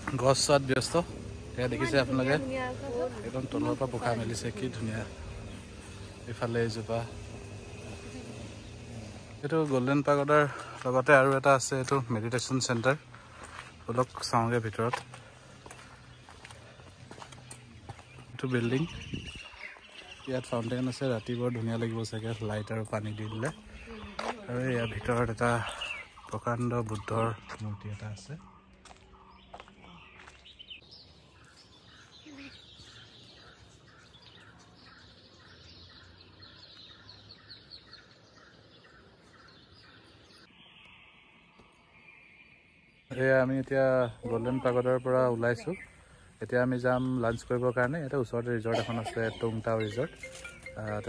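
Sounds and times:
birds chirping: 0.0 - 51.0
faint footsteps: 7.1 - 22.6, 23.4 - 35.1, 50.1 - 51.0.

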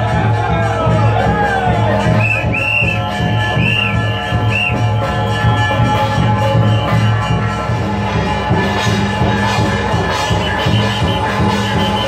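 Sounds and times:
drum beat: 0.0 - 12.0
ringing gongs and cymbals: 0.0 - 12.0
high whistle notes: 2.0 - 7.8, 10.1 - 12.0.

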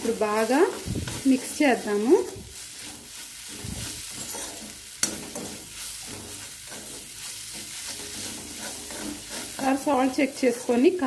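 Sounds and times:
hot oil sizzling: 0.0 - 11.0
metal spatula scraping wok: 0.0 - 11.0.

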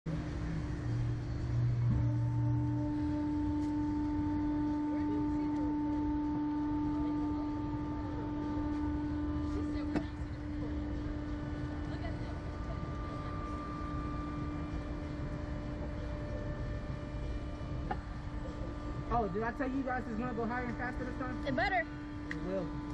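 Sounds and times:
low rumble: 0.1 - 22.9
ride machinery hum: 0.1 - 22.9.

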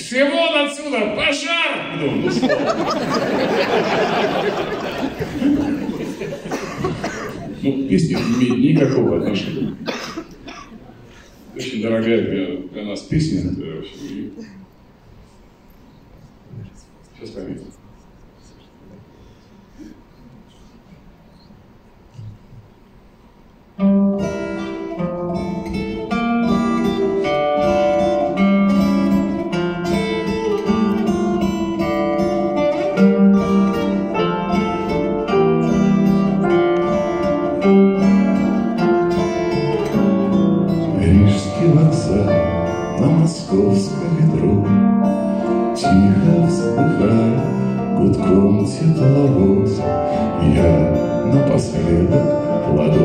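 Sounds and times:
acoustic guitar: 22.0 - 53.0
piano: 23.8 - 53.0.

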